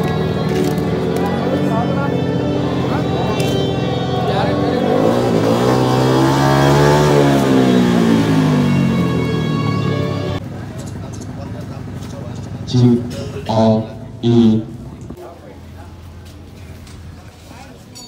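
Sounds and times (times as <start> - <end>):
background music: 0.0 - 10.4
motorcycle engine revving: 0.0 - 15.2.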